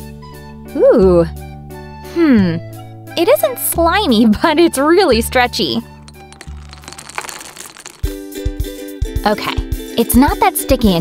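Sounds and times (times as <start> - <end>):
faint background music: 0.4 - 5.9, 9.2 - 11.0.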